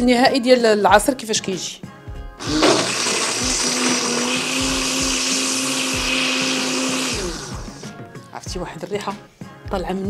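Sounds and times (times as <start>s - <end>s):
blender motor whirring: 2.4s - 7.9s.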